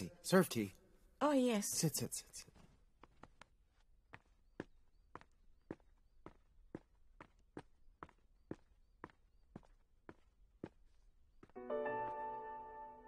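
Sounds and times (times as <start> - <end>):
footsteps on stone floor: 1.5 - 12.4.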